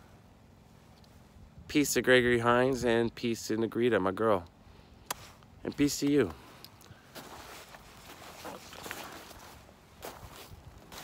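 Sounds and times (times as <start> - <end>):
footsteps: 7.1 - 11.0.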